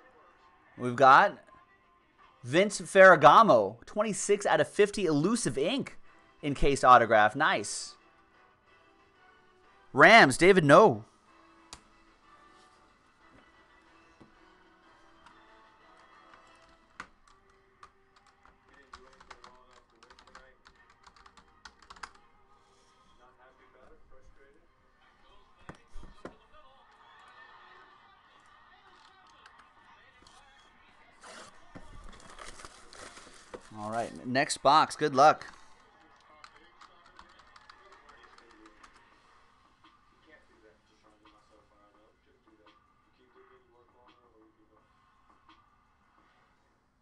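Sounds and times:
background broadcast audio: 0:00.0 - 0:27.2, 0:27.9 - 0:47.0
keyboard typing: 0:15.2 - 0:22.2, 0:36.4 - 0:39.0
cardboard boxes rustling: 0:31.4 - 0:33.8.

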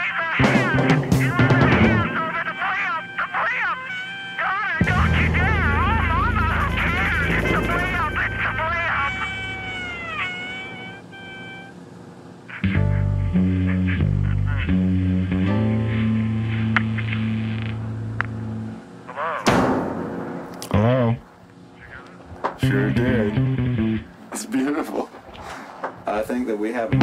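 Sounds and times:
person singing or shouting: 0:00.0 - 0:07.0
bass and guitar notes: 0:00.4 - 0:02.7, 0:04.8 - 0:10.7, 0:12.6 - 0:18.9, 0:22.6 - 0:24.2.

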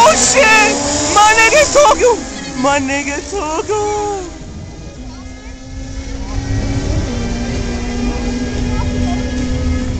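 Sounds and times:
motorcycle engine at steady pitch: 0:00.0 - 0:09.9
low rumble: 0:02.8 - 0:09.9.

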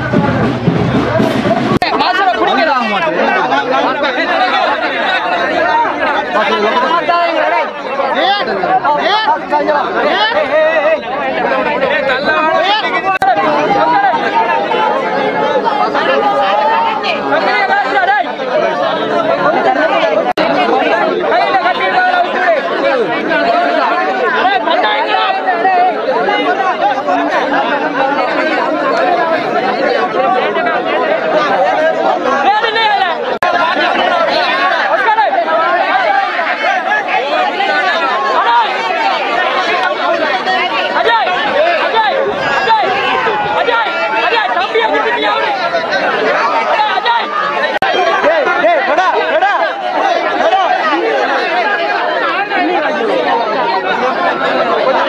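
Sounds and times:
crowd chatter: 0:00.0 - 0:55.0.

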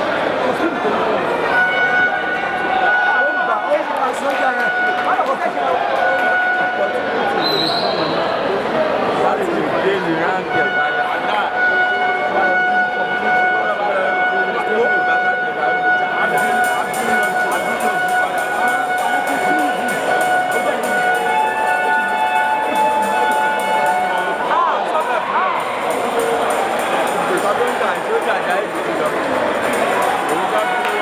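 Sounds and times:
crowd of voices: 0:00.0 - 0:31.0
music: 0:10.4 - 0:31.0
held pitched tone: 0:10.5 - 0:31.0
fast even ticking: 0:16.3 - 0:31.0.

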